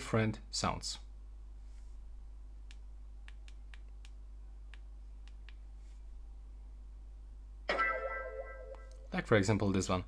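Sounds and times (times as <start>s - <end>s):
low steady hum: 0.0s - 10.0s
fingertips tapping on touchscreen: 2.6s - 6.0s.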